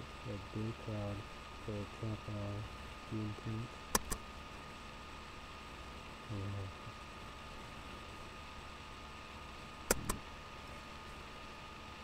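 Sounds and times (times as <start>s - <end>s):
faint hiss with high whine: 0.0s - 12.0s
man talking: 0.2s - 3.8s, 6.3s - 6.9s
sharp clicks: 3.9s - 4.2s, 9.8s - 10.2s.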